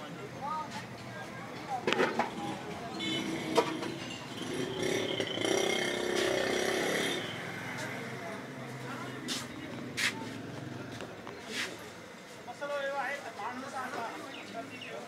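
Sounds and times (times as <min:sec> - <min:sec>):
motor vehicles: 0:00.0 - 0:15.0
people's voices: 0:00.0 - 0:15.0.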